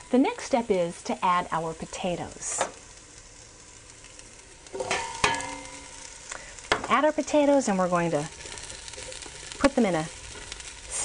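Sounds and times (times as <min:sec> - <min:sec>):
onions sizzling in butter: 0:00.0 - 0:11.0.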